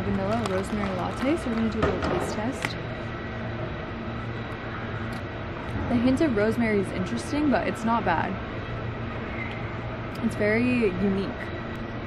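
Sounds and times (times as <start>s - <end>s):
low rumble of street traffic: 0.0s - 12.0s
faint high whine: 2.4s - 12.0s.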